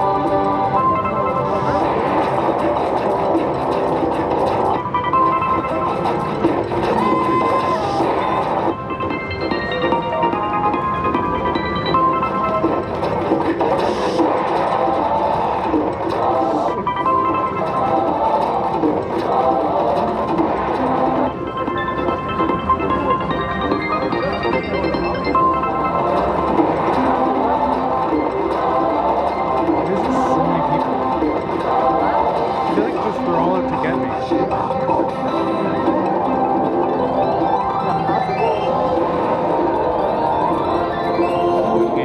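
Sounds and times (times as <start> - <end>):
electronic slot machine melody: 0.0 - 42.0.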